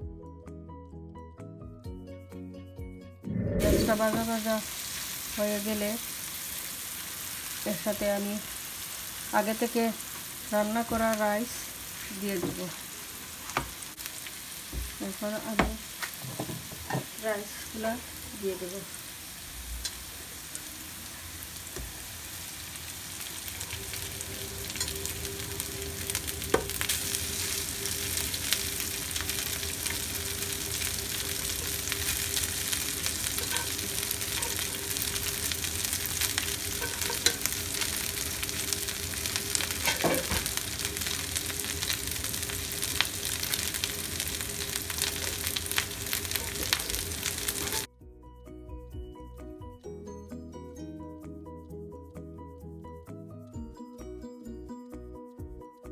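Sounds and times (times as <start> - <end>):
music: 0.0 - 4.6, 23.2 - 36.5, 37.2 - 55.9
food sizzling in a pan: 3.6 - 47.9
wooden spatula scraping: 31.5 - 35.1, 36.4 - 38.2, 39.5 - 41.1.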